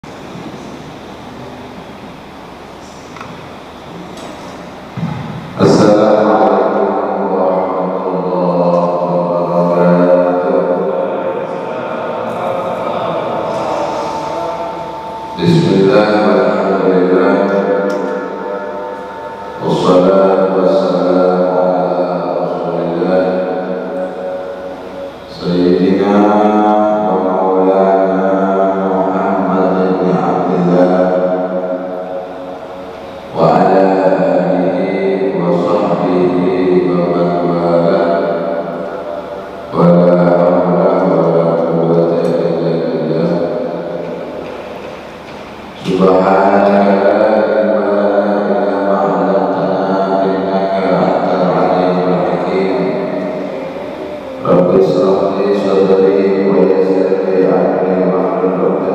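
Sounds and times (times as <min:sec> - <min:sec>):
person chanting devotional recitation: 0:05.0 - 0:31.4, 0:33.3 - 0:44.6, 0:45.8 - 0:58.9.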